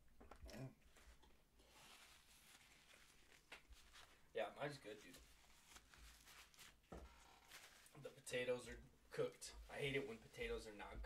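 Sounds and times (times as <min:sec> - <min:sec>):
soft wrapper rustle: 0:00.8 - 0:08.8.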